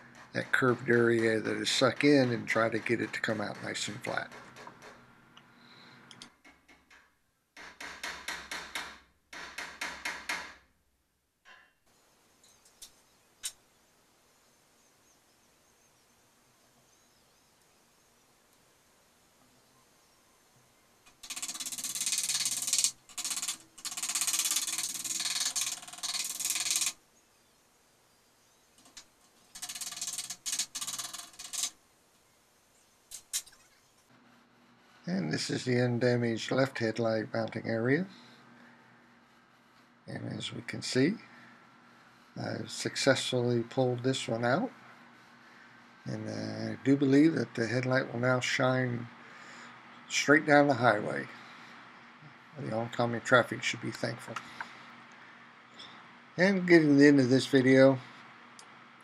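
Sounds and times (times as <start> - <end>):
hammer tapping on sheet metal: 7.6 - 10.6.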